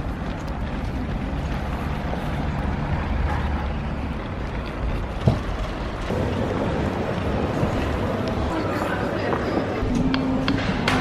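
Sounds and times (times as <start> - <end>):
plastic toy wheels rolling on pavement: 0.0 - 9.9.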